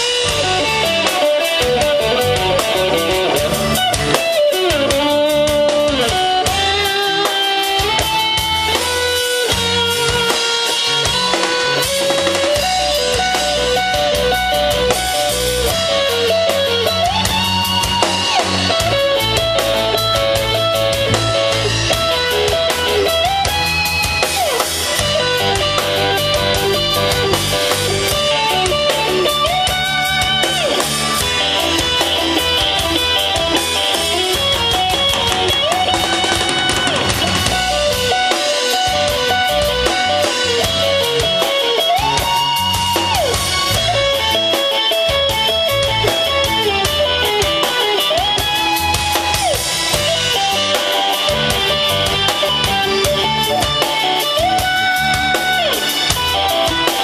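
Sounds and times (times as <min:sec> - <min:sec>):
drum kit with cymbals: 0:00.0 - 0:57.0
electric guitar riff: 0:00.0 - 0:57.0.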